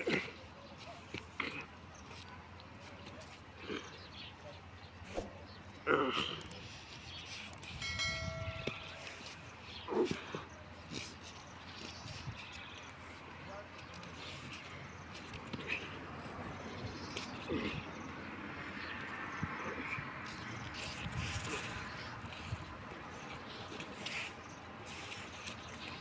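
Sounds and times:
electronic chime: 7.8 - 9.0.

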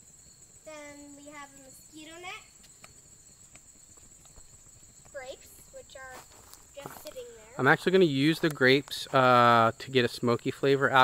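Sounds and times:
crickets chirring: 0.0 - 11.0
footsteps on sandy ground: 3.4 - 7.6.

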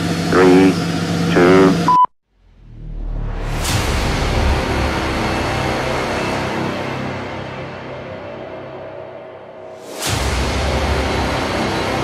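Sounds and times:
brief high beep: 1.9 - 2.1.

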